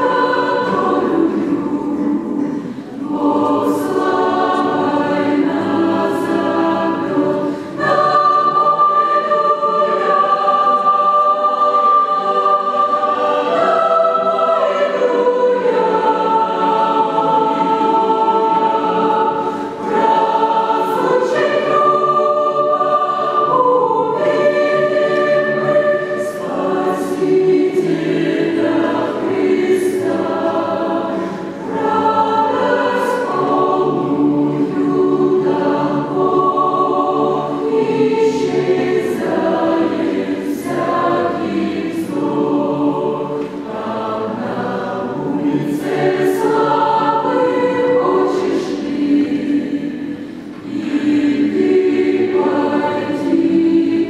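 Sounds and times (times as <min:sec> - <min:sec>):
mixed choir singing in harmony: 0:00.0 - 0:54.0.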